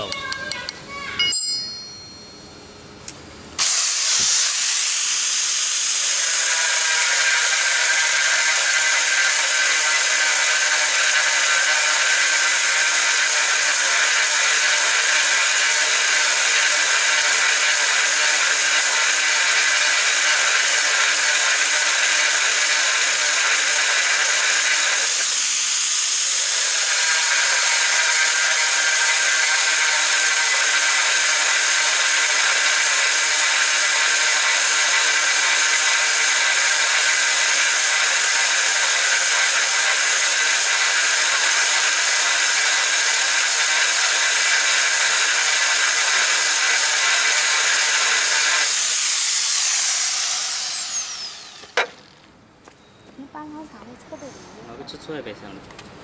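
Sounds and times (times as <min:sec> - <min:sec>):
angle grinder motor whine: 0:03.6 - 0:52.2.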